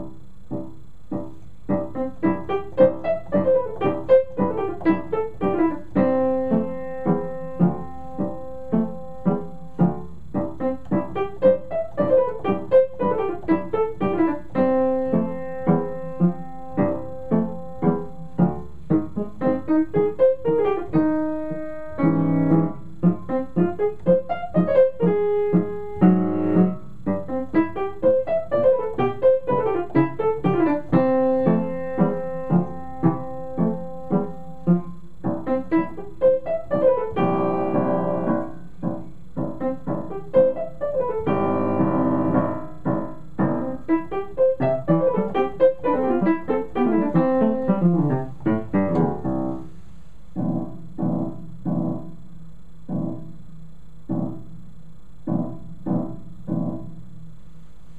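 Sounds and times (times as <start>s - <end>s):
solo piano piece: 0.0s - 57.9s.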